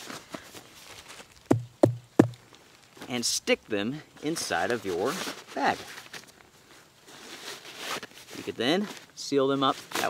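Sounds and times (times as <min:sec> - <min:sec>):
rustle of nylon bag: 0:00.0 - 0:01.5, 0:04.1 - 0:10.0.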